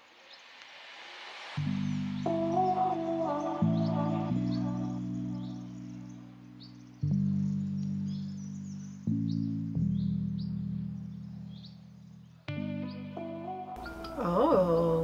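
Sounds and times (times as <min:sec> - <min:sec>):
low sustained music chords: 0:01.6 - 0:15.0.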